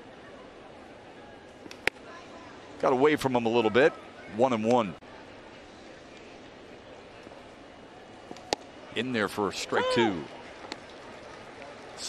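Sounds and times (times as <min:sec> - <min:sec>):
crowd murmur: 0:05.0 - 0:12.0.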